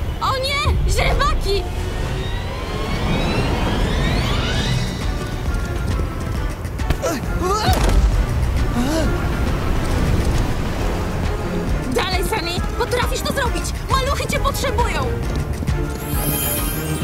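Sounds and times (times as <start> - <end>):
background music: 0.0 - 17.0
rising sweeps: 1.3 - 5.5.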